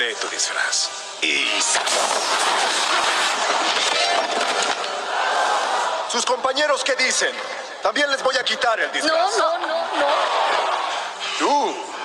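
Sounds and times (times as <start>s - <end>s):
crackling lightning blast: 1.6s - 4.7s.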